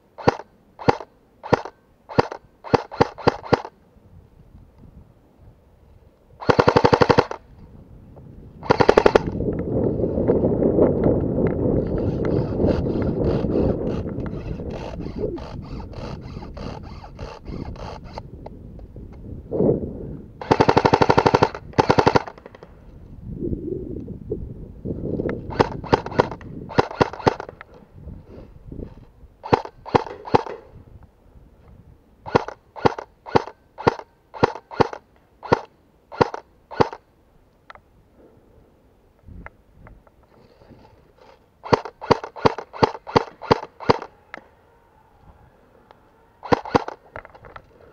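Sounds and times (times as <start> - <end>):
airsoft rifle automatic fire: 0.2 - 3.7, 6.4 - 7.4, 8.6 - 9.4, 20.4 - 22.5, 25.5 - 27.6, 29.4 - 30.6, 32.3 - 37.0, 41.6 - 44.1, 46.4 - 47.0.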